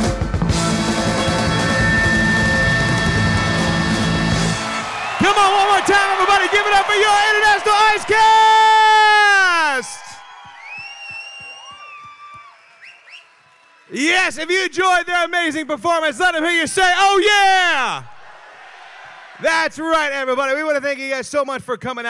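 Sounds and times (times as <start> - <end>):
loud show music: 0.0 - 5.7
audience whooping: 0.8 - 14.8
audience clapping: 1.5 - 14.7
man shouting through pa: 5.2 - 10.1, 16.6 - 18.1.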